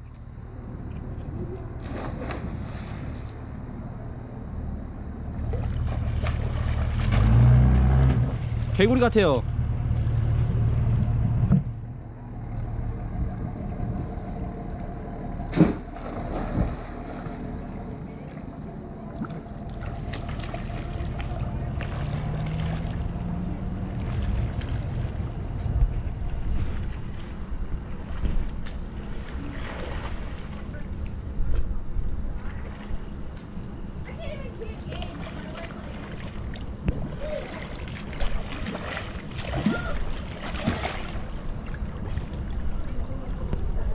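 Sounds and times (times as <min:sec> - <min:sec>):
faint hum: 0:00.0 - 0:43.9
steady low rumble: 0:00.0 - 0:43.9
person swimming splashing: 0:05.6 - 0:08.5, 0:35.1 - 0:42.6.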